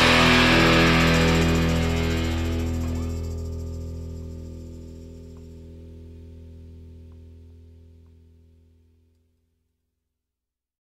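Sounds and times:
rock chord ringing out: 0.0s - 8.6s.

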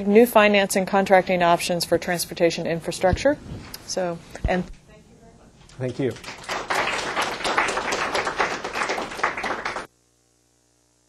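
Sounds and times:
audience applauding: 5.8s - 9.9s.

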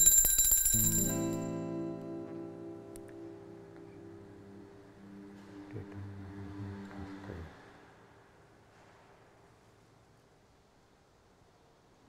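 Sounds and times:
altar bells ringing: 0.0s - 2.0s
sustained instrumental chord: 0.8s - 7.1s.

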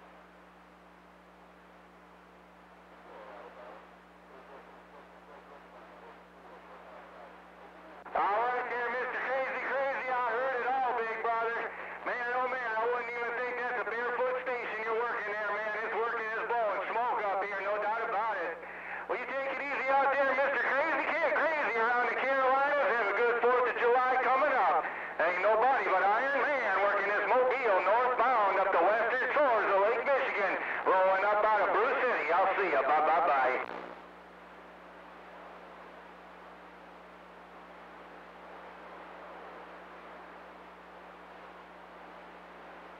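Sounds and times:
low hum from radio receiver: 0.0s - 42.9s
voice over radio: 3.0s - 33.9s.

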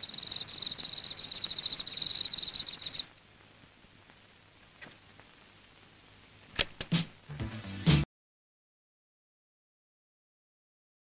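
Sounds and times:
crickets chirping: 0.0s - 3.1s.

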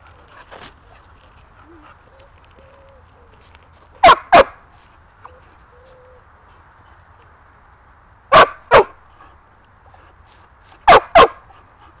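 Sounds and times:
dog barking: 4.0s - 4.6s, 8.3s - 9.0s, 10.9s - 11.4s.

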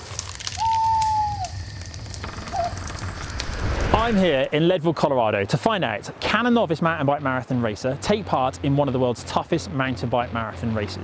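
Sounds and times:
campfire crackling: 0.0s - 10.5s
whistle-like tone: 0.6s - 1.8s
low rumble: 1.4s - 4.9s.

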